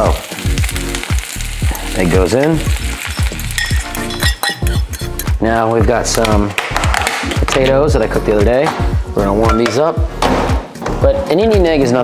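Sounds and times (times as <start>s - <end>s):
onions sizzling in a frying pan: 0.0s - 5.0s.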